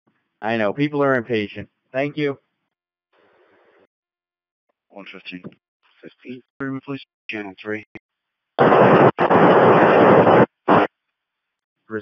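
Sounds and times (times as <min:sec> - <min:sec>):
radio static hiss: 0:08.6 - 0:10.9.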